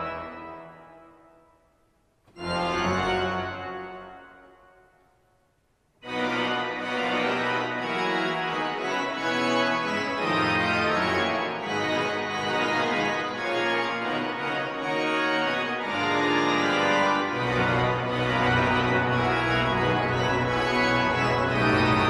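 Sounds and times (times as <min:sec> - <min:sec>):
pipe organ chords: 0:00.0 - 0:01.6, 0:02.3 - 0:05.0, 0:06.0 - 0:22.0.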